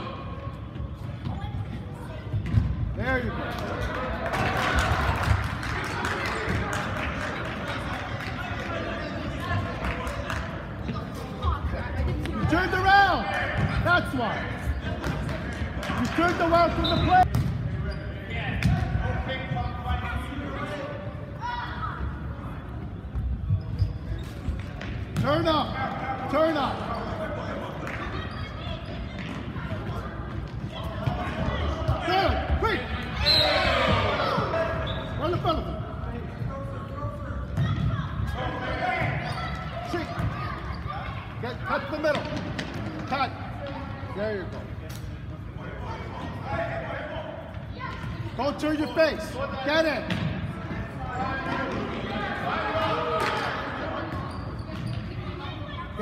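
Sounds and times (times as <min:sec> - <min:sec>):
people shouting in echoing gym: 0:00.0 - 0:02.4, 0:18.4 - 0:22.7, 0:25.2 - 0:35.8, 0:36.5 - 0:42.4, 0:45.6 - 0:56.0
ball kicked and bouncing on gym floor: 0:00.7 - 0:03.7, 0:17.0 - 0:19.6, 0:37.5 - 0:38.4, 0:49.9 - 0:51.9.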